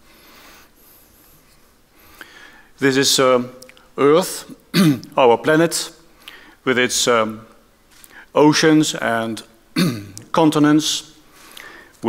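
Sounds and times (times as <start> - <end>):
breathing into headset microphone: 0.0 - 2.8, 6.2 - 6.6, 8.0 - 8.3, 11.3 - 12.0.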